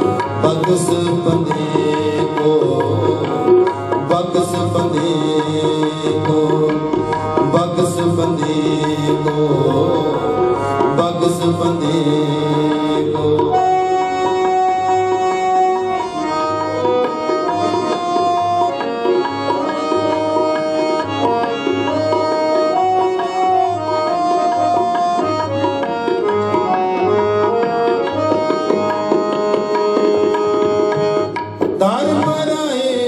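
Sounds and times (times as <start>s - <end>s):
harmonium melody: 0.0s - 33.0s
tabla beat: 0.0s - 33.0s.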